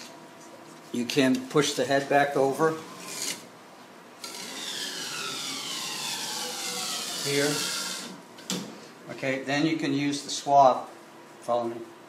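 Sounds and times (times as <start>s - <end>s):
print-head carriage rubbing whir: 4.2s - 8.2s.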